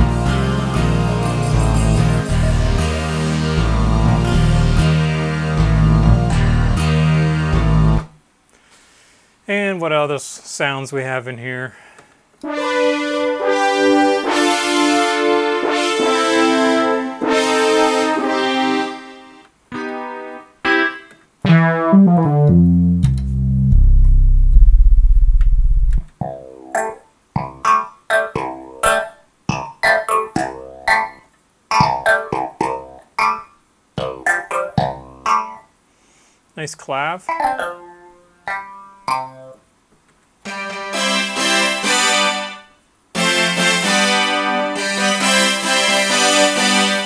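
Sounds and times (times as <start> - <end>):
choppy clavinet-style notes: 0.0 - 5.1, 20.6 - 23.8, 26.2 - 35.7, 37.3 - 39.6
deep synthesizer bass note: 0.0 - 6.9, 21.5 - 26.1
synthesizer chords: 0.0 - 8.1, 12.4 - 29.2.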